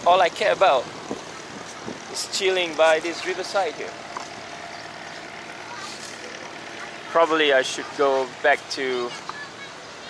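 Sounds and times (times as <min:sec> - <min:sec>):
hum of distant engines: 0:00.0 - 0:10.0.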